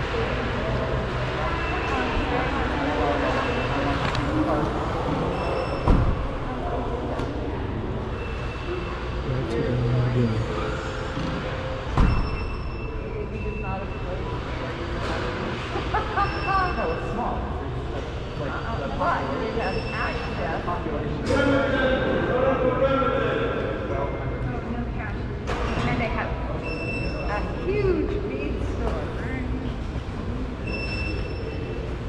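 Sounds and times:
people talking: 0:00.0 - 0:05.6, 0:09.2 - 0:11.6, 0:13.0 - 0:26.6, 0:27.2 - 0:29.8.

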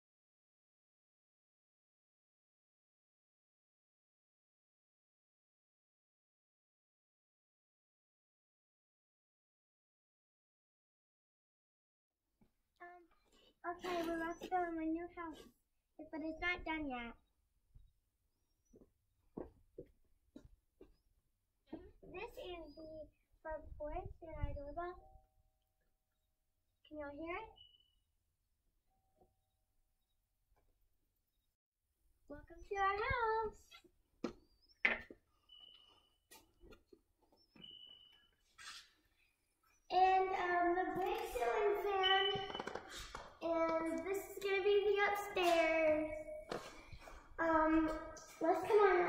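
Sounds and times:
footsteps on concrete: 0:18.7 - 0:21.0, 0:45.0 - 0:48.8
soft scuffs: 0:45.4 - 0:48.0.

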